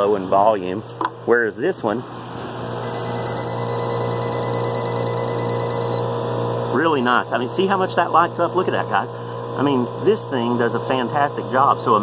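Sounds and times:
heat pump compressor and fan hum: 0:00.0 - 0:12.0.

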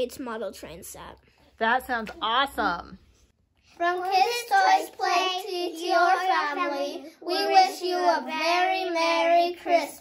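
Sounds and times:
children singing: 0:03.9 - 0:10.0.

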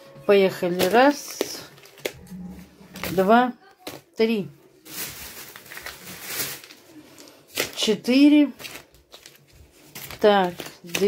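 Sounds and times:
plastic pouches rustling: 0:00.3 - 0:11.0.

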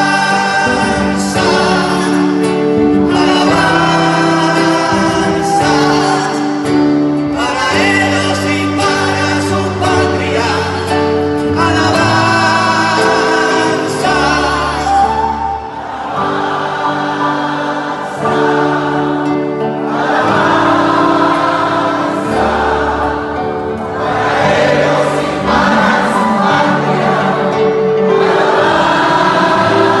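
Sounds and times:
crowd singing in chorus: 0:00.0 - 0:30.0
live folk band playing: 0:00.0 - 0:30.0.

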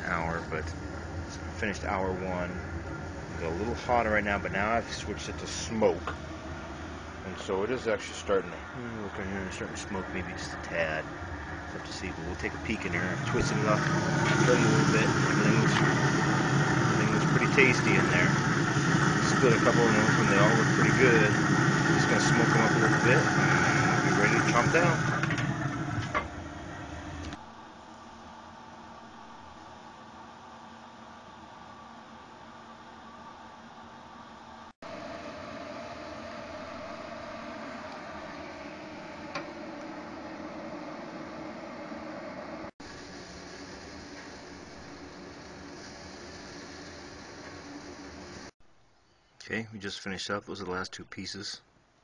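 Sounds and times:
grill fan hum: 0:00.0 - 0:48.6.

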